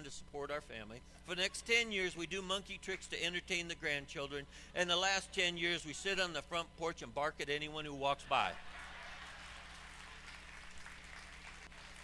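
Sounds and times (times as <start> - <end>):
low electrical hum: 0.0 - 12.0
small audience applauding: 8.6 - 12.0.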